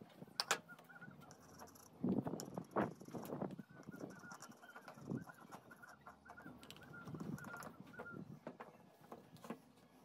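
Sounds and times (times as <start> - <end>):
chickens clucking: 2.8 - 9.1.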